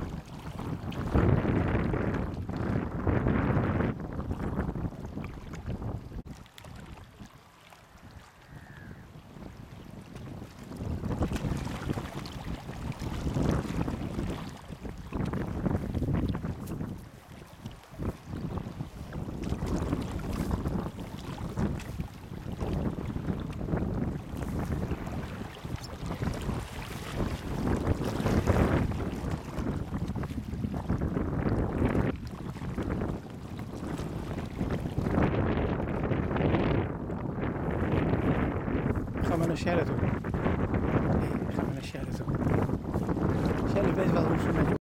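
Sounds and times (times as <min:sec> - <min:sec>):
wind buffeting microphone: 0:00.0 - 0:44.8.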